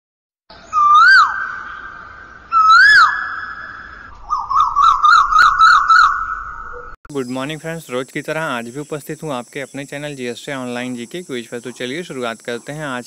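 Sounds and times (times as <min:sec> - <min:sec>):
whistled bird-like call: 0:00.5 - 0:07.0.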